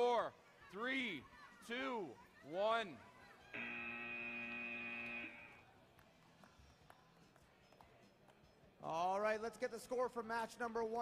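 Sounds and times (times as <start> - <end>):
electronic buzzer: 3.6 - 5.6.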